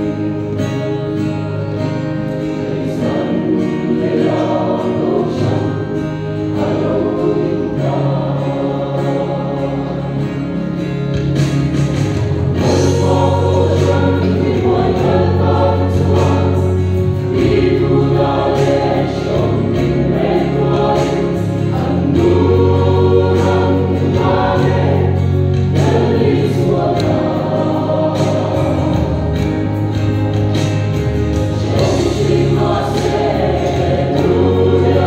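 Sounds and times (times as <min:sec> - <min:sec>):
guitar accompaniment: 0:00.0 - 0:35.0
long held bass notes: 0:00.0 - 0:35.0.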